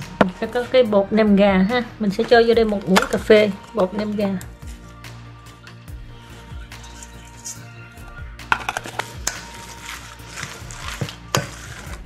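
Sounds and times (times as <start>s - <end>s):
utensils scraping steel bowl: 6.4s - 7.8s, 8.5s - 12.0s.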